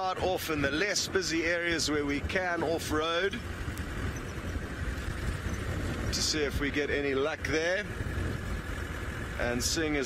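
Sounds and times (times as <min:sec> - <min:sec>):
road noise on dirt track: 0:00.0 - 0:10.0
vehicle engine rumble: 0:00.0 - 0:10.0.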